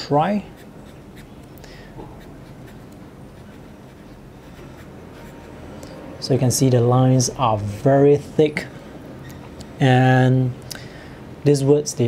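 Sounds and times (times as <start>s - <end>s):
pen nib scratching on paper: 0.4s - 5.8s.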